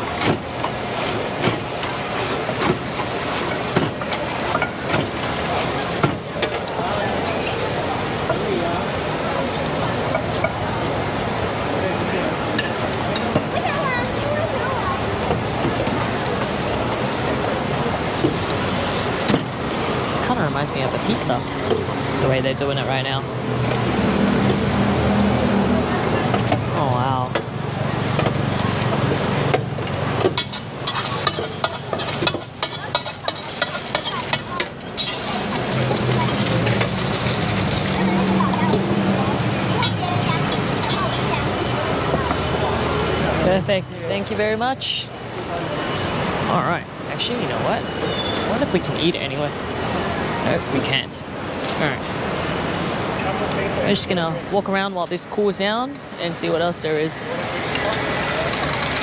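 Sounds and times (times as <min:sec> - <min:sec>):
background voices and chatter: 0:00.0 - 0:59.0.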